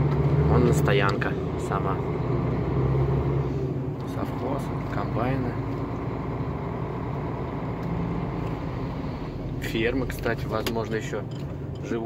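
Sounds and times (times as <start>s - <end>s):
road noise: 0.0s - 12.0s
truck diesel engine droning: 0.0s - 12.0s.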